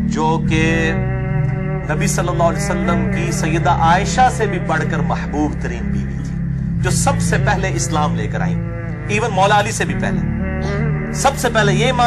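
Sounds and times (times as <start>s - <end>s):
low background music drone: 0.0s - 12.0s
man talking: 0.1s - 1.0s, 1.9s - 12.0s.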